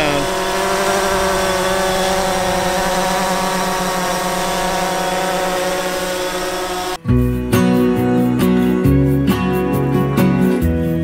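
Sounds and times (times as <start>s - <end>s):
quadcopter propellers buzzing: 0.0s - 7.0s.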